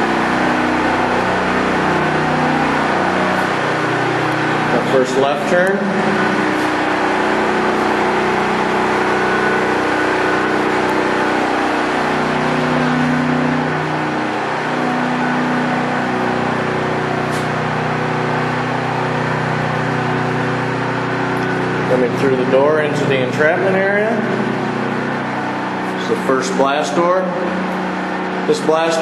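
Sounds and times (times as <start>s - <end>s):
generator humming: 0.0s - 29.0s.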